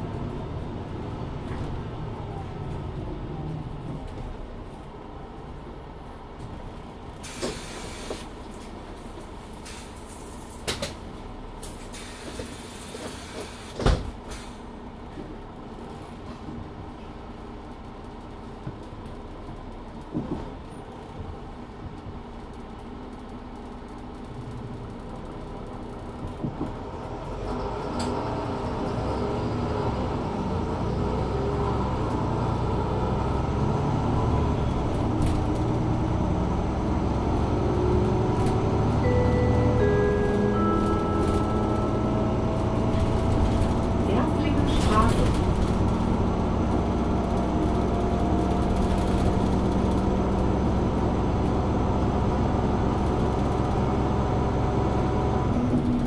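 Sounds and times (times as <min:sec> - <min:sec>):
bus diesel engine accelerating: 0:00.0 - 0:56.0
descending three-note chime: 0:39.0 - 0:42.9.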